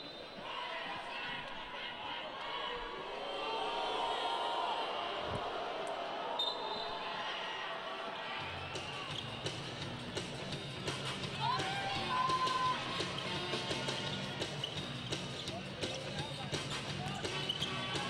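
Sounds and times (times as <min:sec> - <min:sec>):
arena crowd noise: 0:00.0 - 0:18.0
background music: 0:08.2 - 0:18.0.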